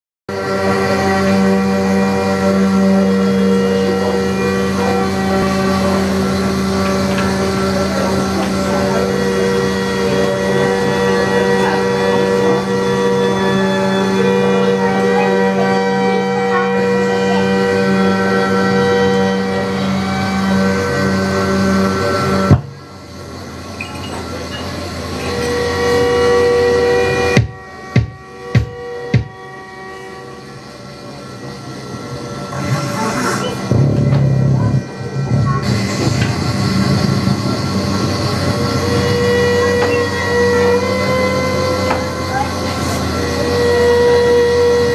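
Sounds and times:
experimental drone music: 0.3 - 44.9.

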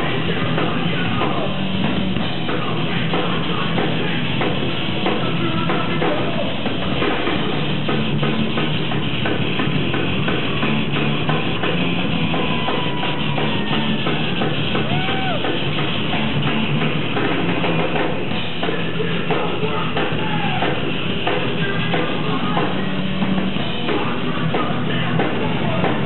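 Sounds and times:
metal band playing live: 0.0 - 26.0.

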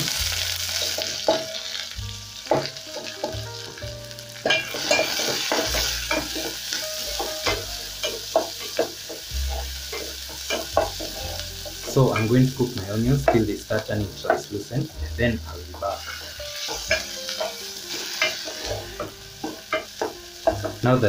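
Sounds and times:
onions sizzling in oil: 0.0 - 21.0.

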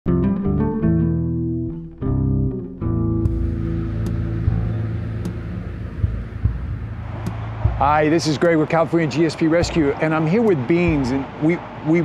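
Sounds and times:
distant road traffic rumble: 3.3 - 12.0.

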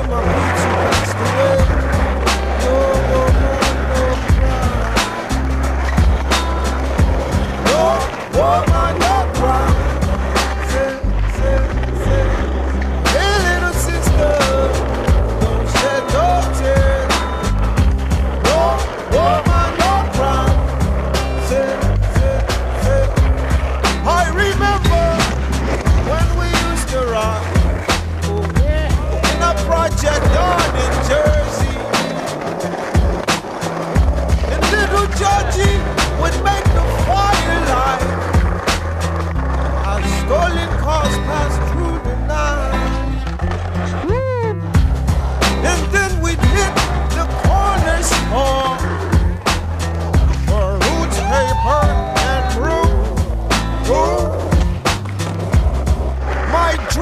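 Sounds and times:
music with heavy bass line: 0.0 - 57.0
skateboard clacks: 0.0 - 57.0
skateboard wheels rolling on concrete: 0.0 - 57.0.

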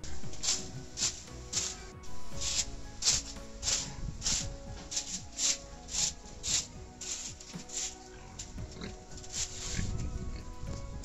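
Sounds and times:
music playing: 0.0 - 11.0
short scraping noises: 0.1 - 9.8.

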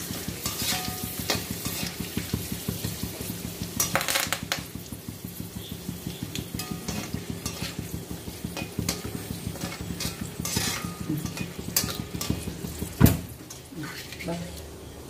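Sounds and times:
metal spatula scraping a wok: 0.0 - 14.4
chillies sizzling in hot oil: 0.0 - 15.0.

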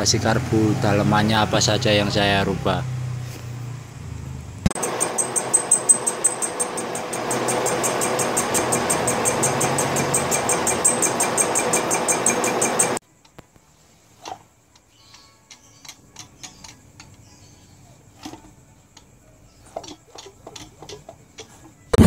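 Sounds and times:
fast regular ticking: 4.7 - 13.4, 15.1 - 17.3
metal lathe machining: 4.8 - 13.0
motorcycle engine idling: 4.8 - 13.0.

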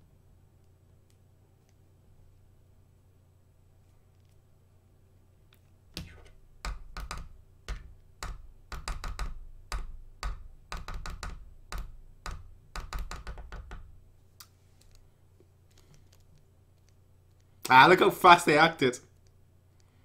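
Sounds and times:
sharp clicks and knocks with thuds: 5.9 - 14.0.

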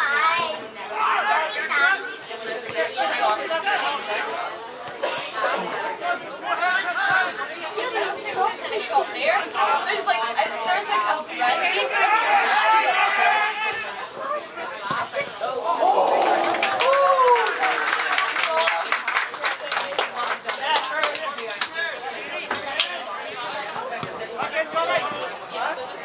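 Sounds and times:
overlapping indistinct voices: 0.0 - 26.0.

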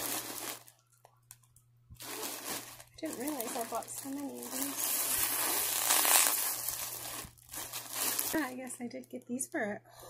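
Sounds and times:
bag crinkling and rustling: 0.0 - 1.4, 2.0 - 8.6.

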